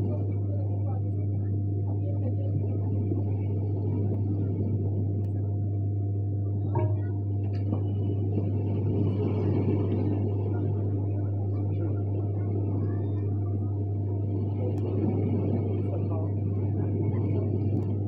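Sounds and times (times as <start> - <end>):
dull constant rumble: 0.0 - 18.0
steady low hum: 0.0 - 18.0.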